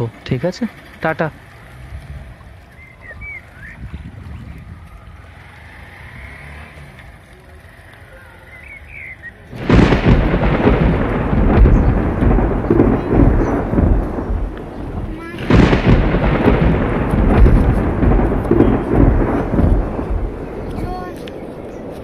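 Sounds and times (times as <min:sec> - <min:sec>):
thunder rumbling: 0:09.5 - 0:22.0.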